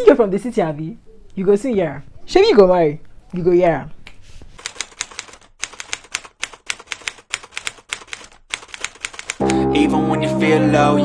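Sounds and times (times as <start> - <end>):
rapid sharp clicks: 4.6 - 9.5.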